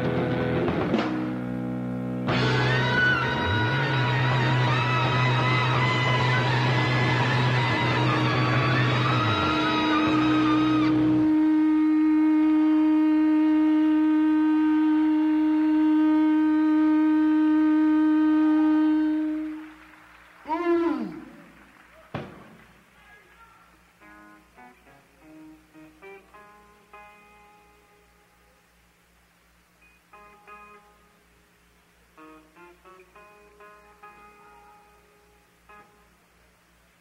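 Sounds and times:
live rock band playing: 0.0s - 16.2s
swooping tone: 2.3s - 19.7s.

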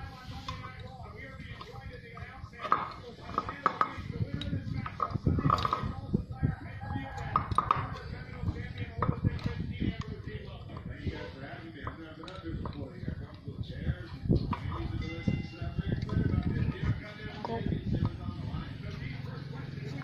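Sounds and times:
people talking: 0.0s - 20.0s.

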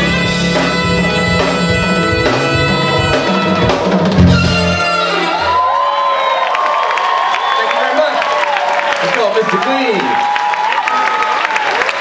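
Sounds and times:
live jazz band playing: 0.0s - 5.8s
audience cheering and applauding: 3.1s - 12.0s.

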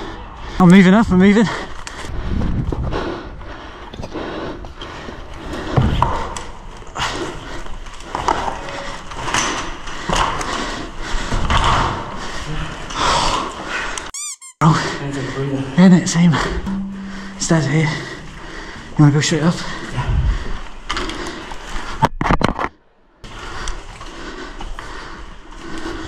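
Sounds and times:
squeaks and knocks: 14.1s - 14.6s.

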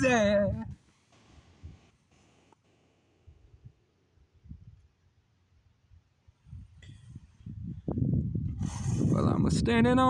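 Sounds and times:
loud breathy hiss: 8.6s - 9.2s.

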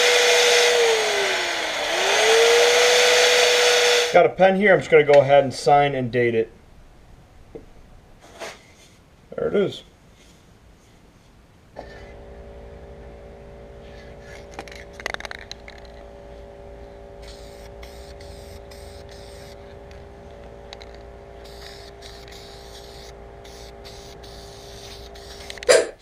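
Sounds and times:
steady hum: 0.0s - 26.0s
aerosol can spraying: 17.2s - 19.6s, 20.8s - 26.0s.

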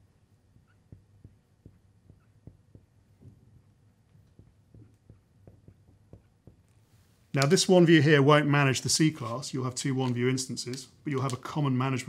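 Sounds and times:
low steady hum: 0.0s - 12.0s
marker tapping and squeaking on glass: 0.6s - 3.4s, 4.1s - 6.8s.

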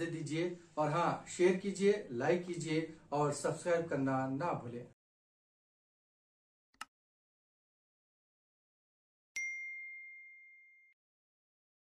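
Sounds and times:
notification bell ding: 9.4s - 11.0s.

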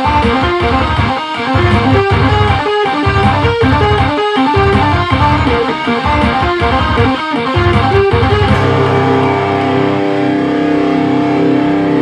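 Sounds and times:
electric guitar chord ringing: 0.0s - 12.0s.

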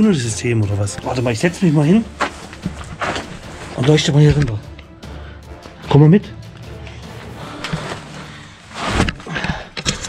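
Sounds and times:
scuffing and handling noise: 2.1s - 4.5s
rubbing rush: 7.0s - 9.3s.

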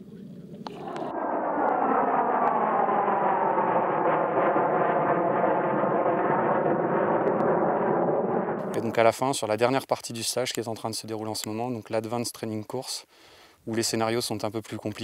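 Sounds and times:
aircraft engine flying overhead: 0.0s - 9.1s.

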